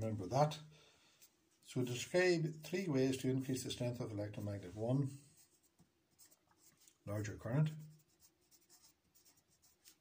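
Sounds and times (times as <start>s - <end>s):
pencil scratching on paper: 4.0s - 10.0s.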